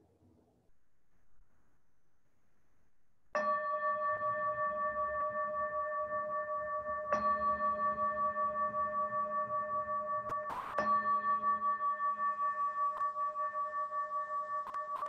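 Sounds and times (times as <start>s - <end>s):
singing bowl ringing: 3.3s - 15.0s.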